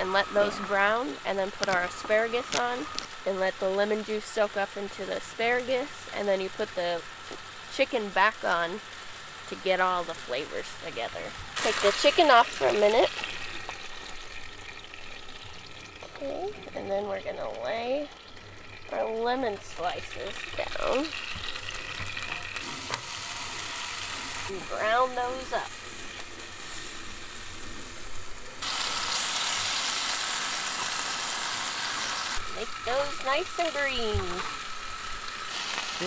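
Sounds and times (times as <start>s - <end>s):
frying pan sizzling: 0.0s - 36.0s.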